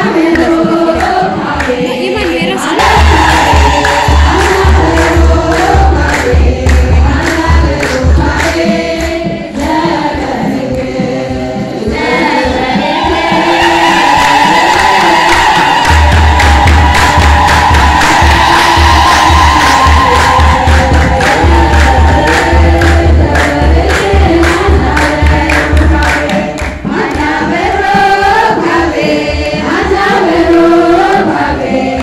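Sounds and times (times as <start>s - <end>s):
deep pulsing beat: 0.0s - 32.0s
women's choir singing a hymn: 0.0s - 32.0s.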